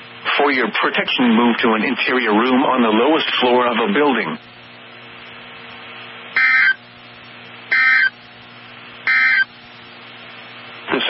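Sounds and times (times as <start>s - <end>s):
low steady hum: 0.0s - 11.0s
harsh two-tone digital bursts: 6.4s - 6.8s, 7.7s - 8.2s, 9.1s - 9.5s.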